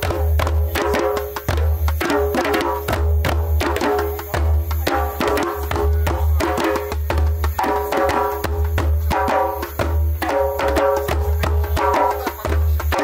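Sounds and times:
djembes playing fast rhythm: 0:00.0 - 0:13.0.

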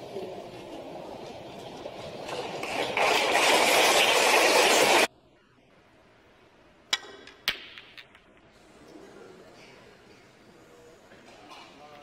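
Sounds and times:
snooker balls clicking: 0:06.9 - 0:08.5.

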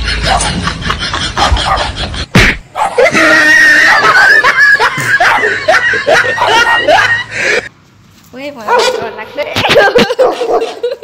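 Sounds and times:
sharp knock: 0:02.3 - 0:02.6.

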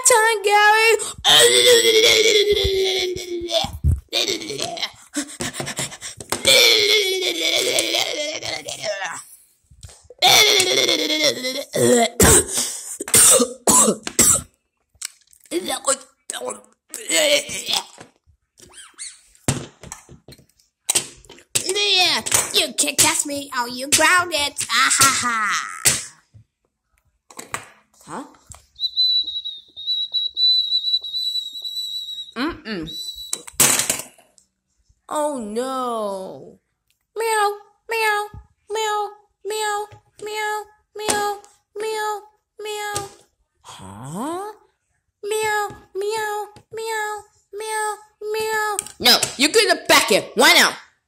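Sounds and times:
high-pitched whistle: 0:28.8 - 0:33.5.

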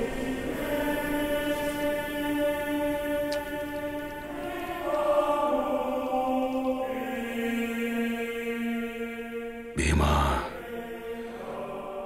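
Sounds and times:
man singing a long note: 0:09.8 - 0:10.7.

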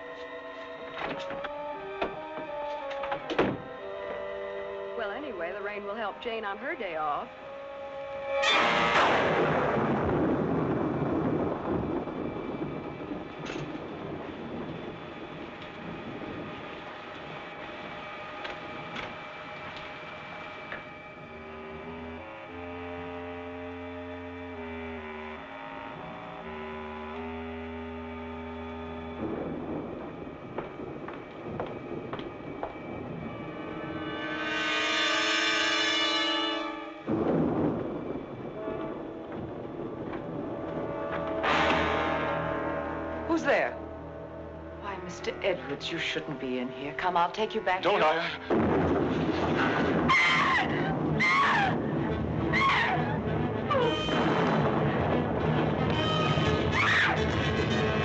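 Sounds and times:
orchestral film score chords: 0:00.0 - 0:58.0
storm noise: 0:00.0 - 0:58.0.

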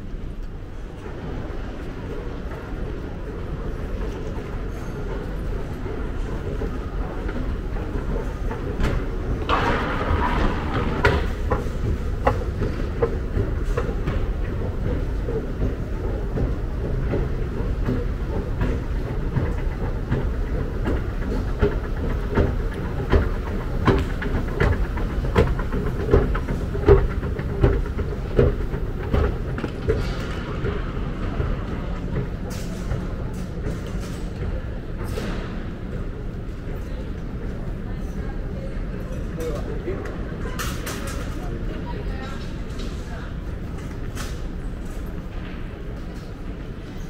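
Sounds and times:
escalator mechanical rumble: 0:00.0 - 0:47.0
escalator steps clattering: 0:00.3 - 0:37.8.

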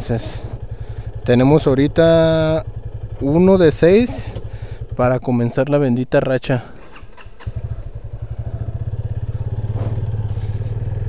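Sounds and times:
motorcycle engine running: 0:00.0 - 0:05.6, 0:06.6 - 0:11.0.

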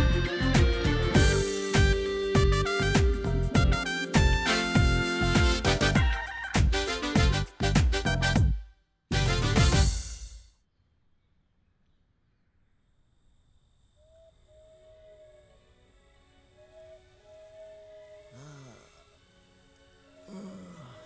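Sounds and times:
pulsing high chirp: 0:00.0 - 0:06.6, 0:14.0 - 0:21.0
music: 0:00.0 - 0:10.5
low snore-like groan: 0:18.1 - 0:19.2, 0:20.2 - 0:21.0.

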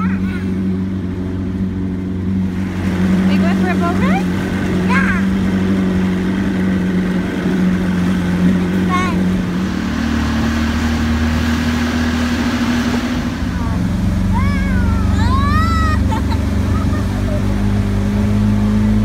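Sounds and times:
children calling: 0:00.0 - 0:00.9, 0:04.7 - 0:05.8, 0:13.4 - 0:17.8
motorboat engine running: 0:00.0 - 0:19.0
wind and water rushing: 0:00.0 - 0:19.0.

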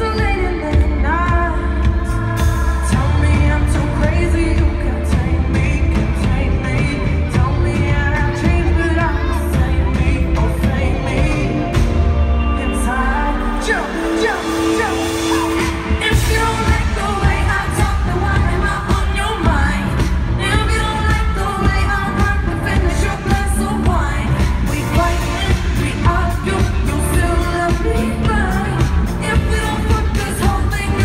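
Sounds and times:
pop band playing: 0:00.0 - 0:31.0
woman singing into a microphone: 0:00.0 - 0:31.0
steady drum beat: 0:14.7 - 0:31.0.

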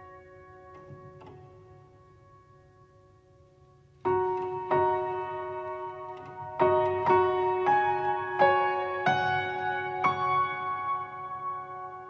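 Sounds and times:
soft slow piano music: 0:00.0 - 0:12.0.

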